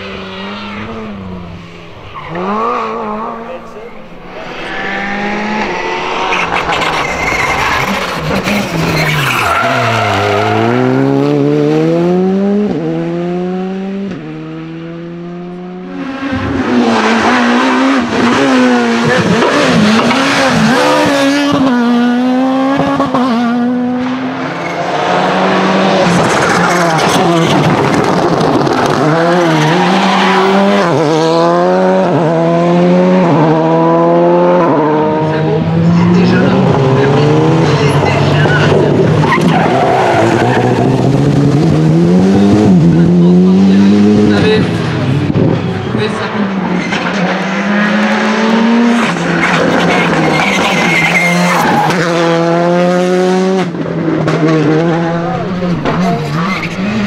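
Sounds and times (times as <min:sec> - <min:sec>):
rally car engine revving: 0:00.0 - 0:57.0.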